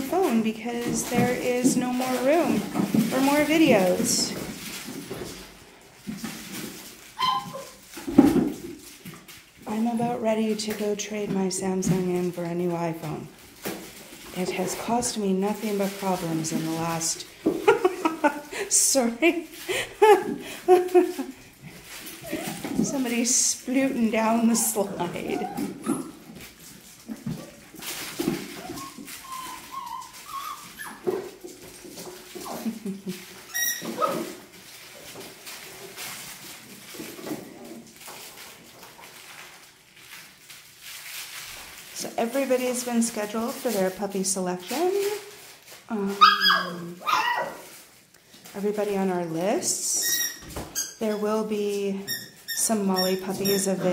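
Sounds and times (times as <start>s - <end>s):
puppies playing: 0.0s - 53.9s
puppy whimpering yips: 7.2s - 7.8s, 28.6s - 31.1s, 46.2s - 47.6s.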